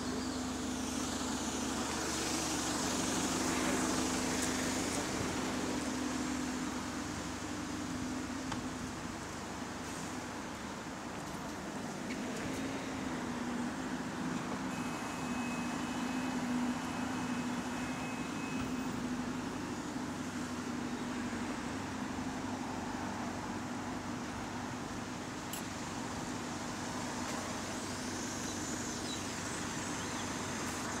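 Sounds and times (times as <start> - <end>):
diesel bus engine idling: 0.0 - 31.0.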